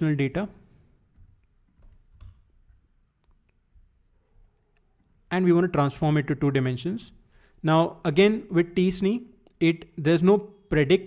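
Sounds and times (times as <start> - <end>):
keyboard clicks: 1.2 - 2.5.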